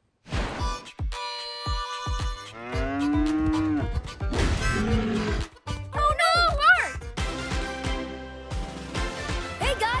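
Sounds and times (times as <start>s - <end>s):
light background music: 0.6s - 10.0s
cartoon cow mooing: 2.5s - 4.0s, 4.6s - 5.5s.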